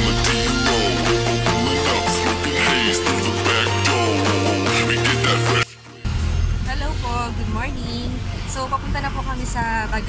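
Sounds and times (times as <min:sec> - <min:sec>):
vehicle engine rumble and road noise: 0:06.1 - 0:10.0
woman speaking: 0:06.7 - 0:10.0.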